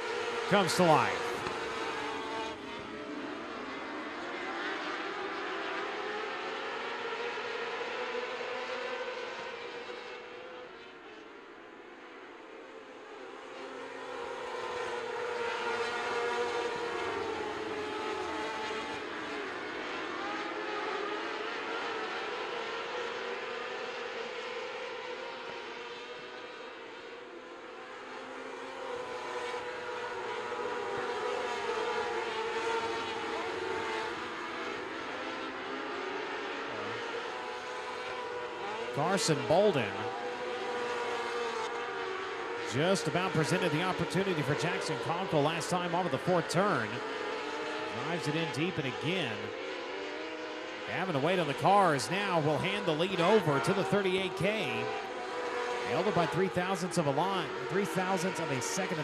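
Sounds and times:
racing car engines revving: 0.0 - 59.0.

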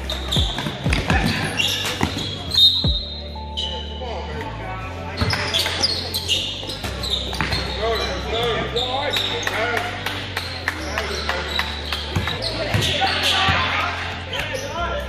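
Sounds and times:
music with deep bass line: 0.0 - 1.6, 2.2 - 14.3
sneakers squeaking on court: 0.0 - 4.0, 5.1 - 14.8
voices: 0.0 - 15.0.

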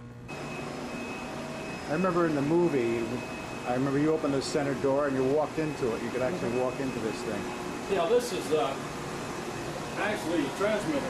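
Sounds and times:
thin high whine: 0.0 - 11.0.

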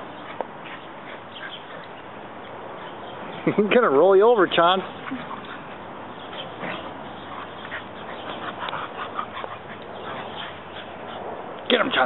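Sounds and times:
dogs vocalizing: 0.1 - 3.5, 4.6 - 12.0.

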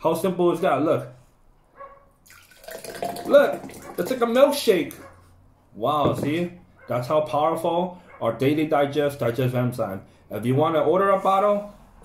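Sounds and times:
thick liquid pouring into glass: 2.2 - 4.3.

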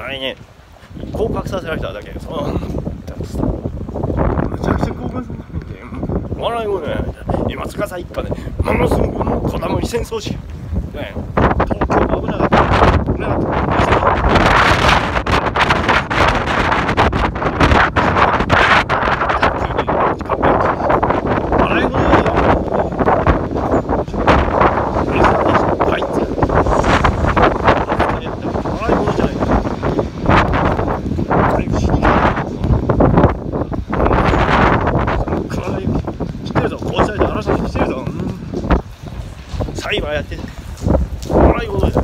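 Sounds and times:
wind buffeting microphone: 0.0 - 42.0.

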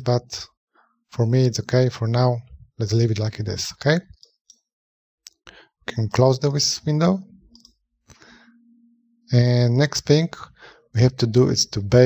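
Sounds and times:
person speaking: 0.0 - 0.5, 1.2 - 4.3, 5.3 - 7.7, 9.3 - 12.0
computer mouse click: 7.5 - 7.8.

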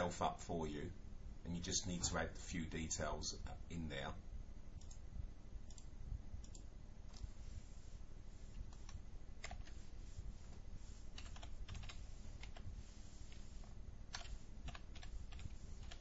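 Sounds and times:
faint low hum: 0.0 - 16.0
computer mouse clicks: 4.8 - 5.0, 5.6 - 7.3, 8.7 - 9.8, 11.2 - 12.6, 14.1 - 16.0
keyboard typing: 8.7 - 9.8, 11.2 - 12.7, 14.1 - 16.0.

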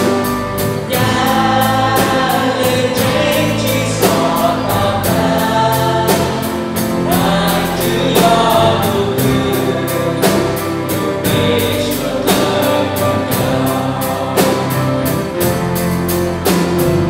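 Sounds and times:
group singing along: 0.0 - 15.8
live band playing: 0.0 - 17.0
man singing lead: 0.8 - 15.6.

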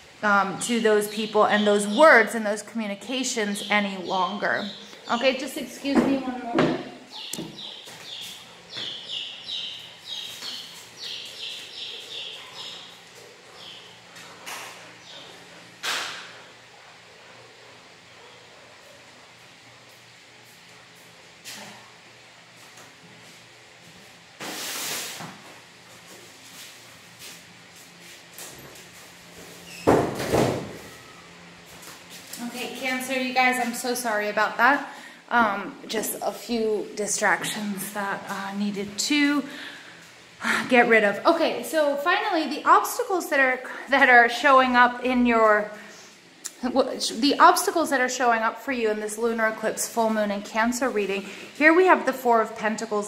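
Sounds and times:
baby chicks peeping: 7.1 - 15.4.

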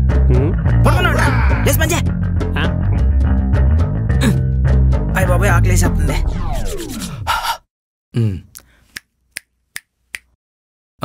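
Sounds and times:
man snapping fingers: 8.5 - 10.4.

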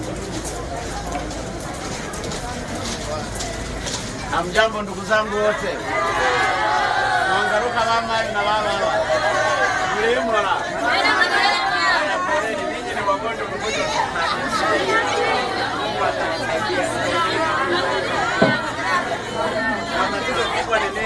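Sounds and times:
crowd chattering: 0.0 - 21.0.

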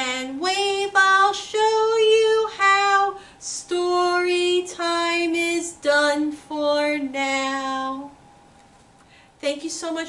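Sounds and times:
woman singing children's song: 0.0 - 8.2, 9.4 - 10.0.

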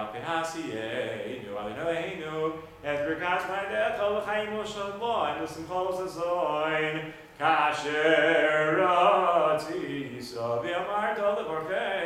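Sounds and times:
man chanting prayer: 0.0 - 12.0.

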